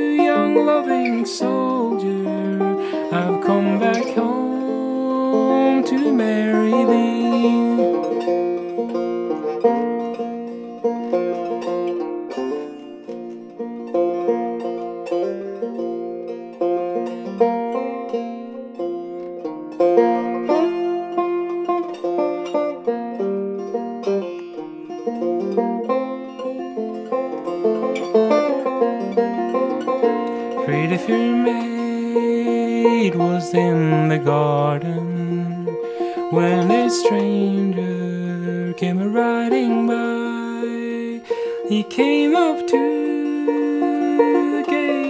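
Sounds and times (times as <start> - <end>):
banjo picking: 0.0 - 45.0.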